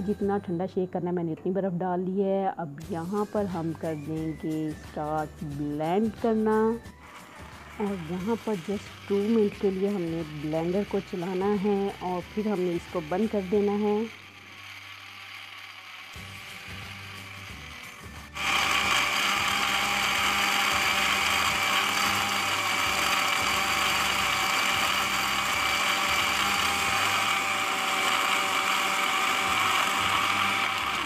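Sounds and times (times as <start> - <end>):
blender motor whining: 6.3 - 31.0.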